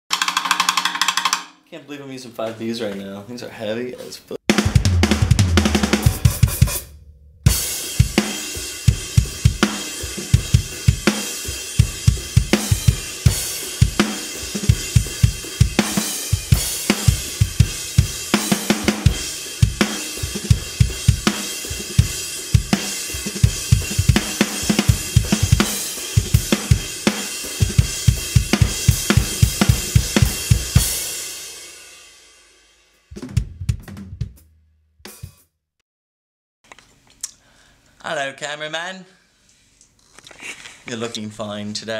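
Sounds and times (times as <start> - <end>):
drum kit groove: 0.0 - 1.8, 3.9 - 35.5.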